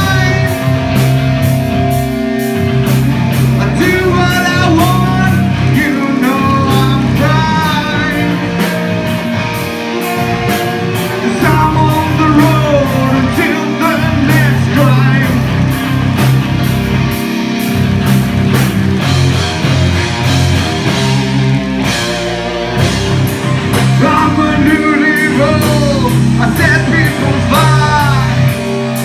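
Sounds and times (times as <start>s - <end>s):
man singing: 0.0s - 0.9s, 3.6s - 8.9s, 11.0s - 15.6s, 23.9s - 28.6s
bass guitar: 0.0s - 29.0s
drum kit with cymbals: 0.0s - 29.0s
electric guitars: 0.0s - 29.0s.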